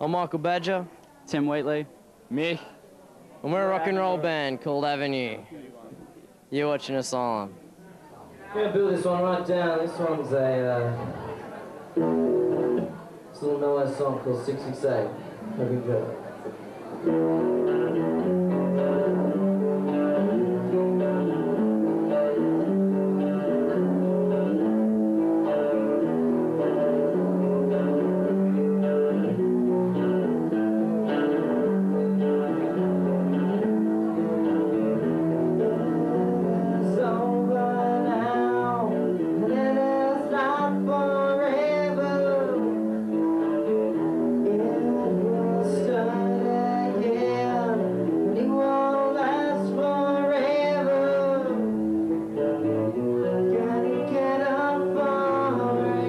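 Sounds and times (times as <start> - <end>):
rock band with electric guitars: 11.0 - 13.1, 16.4 - 56.0
man singing: 35.4 - 43.2, 44.2 - 51.8, 53.2 - 56.0.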